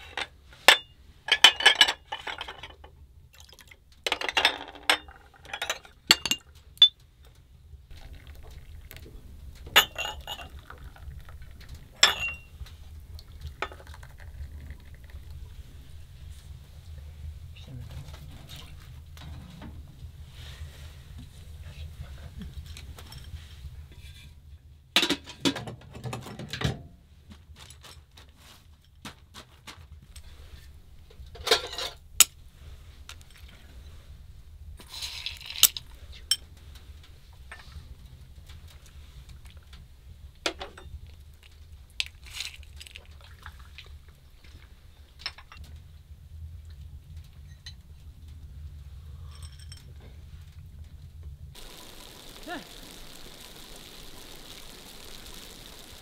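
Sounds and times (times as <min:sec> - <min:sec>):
low steady hum: 0:00.0 - 0:25.6, 0:30.0 - 0:56.0
tea glasses and dishes clinking: 0:09.7 - 0:11.3, 0:12.0 - 0:12.6, 0:13.5 - 0:14.7.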